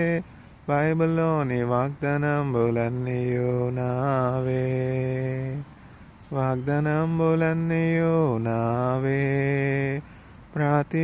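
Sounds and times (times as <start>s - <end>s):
man chanting a held vowel: 0.0s - 11.0s.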